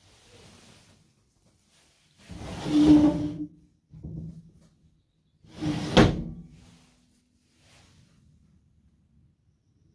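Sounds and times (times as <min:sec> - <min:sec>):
sliding door sliding on wooden track: 0:02.2 - 0:03.5, 0:05.5 - 0:06.9.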